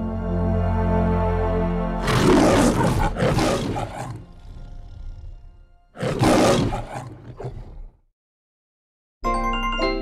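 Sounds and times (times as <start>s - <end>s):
lion roaring: 2.0s - 8.0s.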